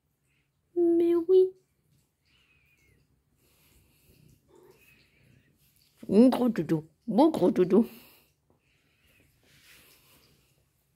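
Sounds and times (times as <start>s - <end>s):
faint soft cat sounds: 1.5s - 6.0s.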